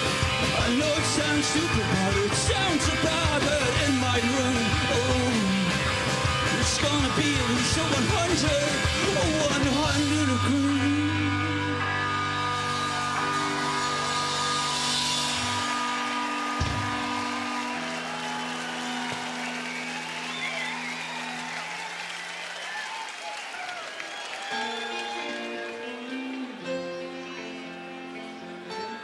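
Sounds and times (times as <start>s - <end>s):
rock band closing chord ringing: 0.0s - 22.0s
crowd cheering: 11.7s - 29.0s.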